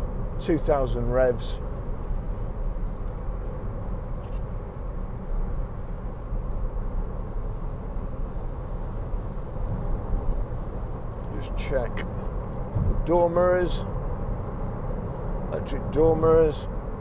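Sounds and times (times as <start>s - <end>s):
engine hum: 0.0s - 17.0s
road and tyre noise: 0.0s - 17.0s.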